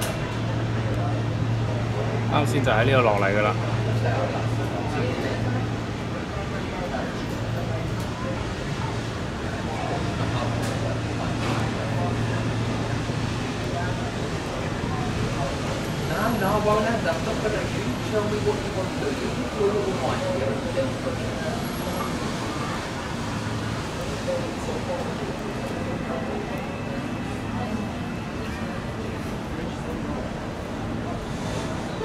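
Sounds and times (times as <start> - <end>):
people talking: 0.0 - 32.0.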